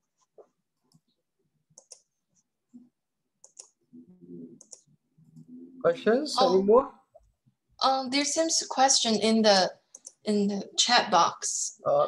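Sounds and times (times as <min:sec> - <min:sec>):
computer clicks: 0:01.8 - 0:02.1, 0:03.4 - 0:03.8, 0:04.6 - 0:05.5, 0:09.9 - 0:10.2.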